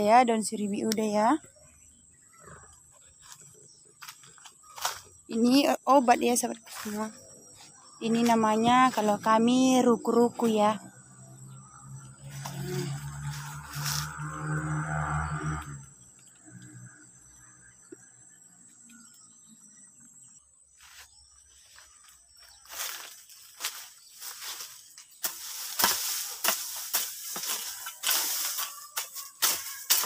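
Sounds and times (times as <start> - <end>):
hand hoe scraping dry soil: 24.3 - 30.0.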